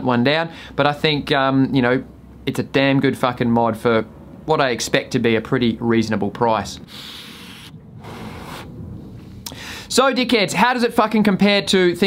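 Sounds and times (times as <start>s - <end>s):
air hissing through vape atomiser: 6.8s - 8.8s
breathy exhale of vapour: 6.9s - 9.9s.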